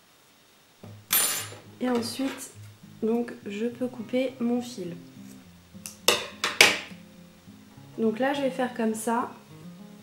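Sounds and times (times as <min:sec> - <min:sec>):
quiet background music: 0:00.8 - 0:10.0.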